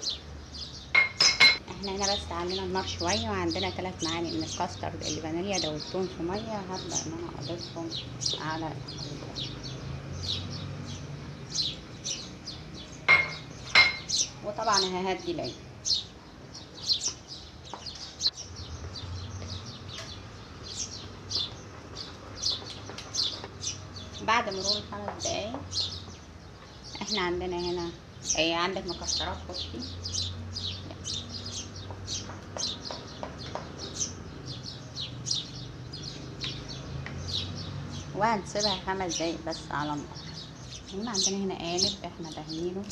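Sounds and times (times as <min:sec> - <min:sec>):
birds chirping: 0:00.0 - 0:42.9.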